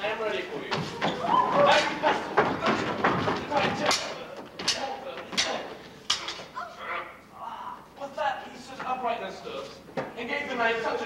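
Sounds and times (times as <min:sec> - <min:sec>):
voices: 0:00.0 - 0:11.0
stage swords clashing: 0:01.7 - 0:06.5.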